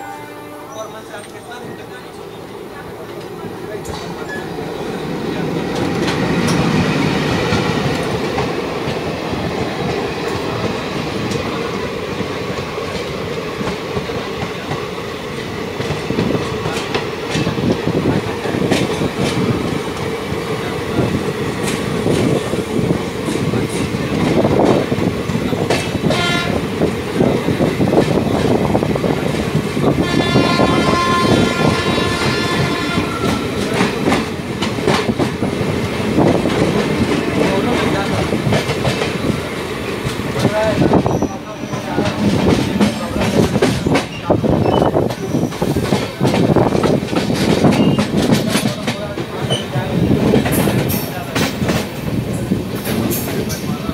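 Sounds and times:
train horn: 0.0 - 1.0, 26.0 - 26.7, 30.0 - 33.6
train rumbling past: 0.0 - 53.9.

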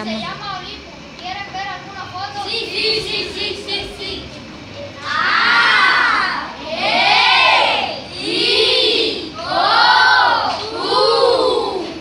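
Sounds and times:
children shouting together: 5.0 - 12.0.

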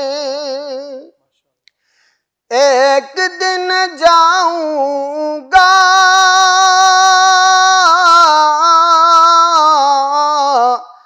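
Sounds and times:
man singing with vibrato: 0.0 - 1.2, 2.5 - 11.0.

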